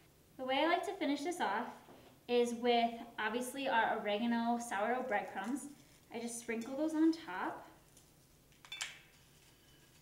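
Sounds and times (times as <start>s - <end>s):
breadcrumbs rustling: 9.0s - 10.0s.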